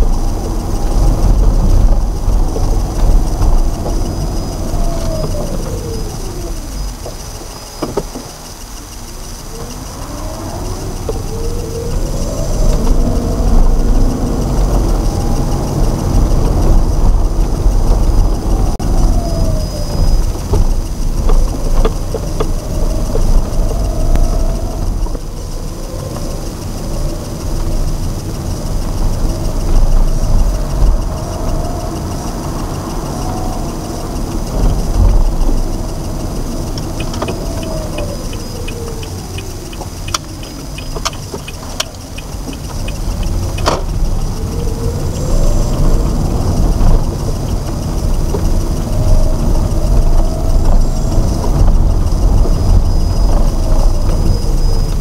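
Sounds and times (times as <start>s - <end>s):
car engine and road noise: 0.0s - 55.0s
turn signal ticking: 0.0s - 55.0s.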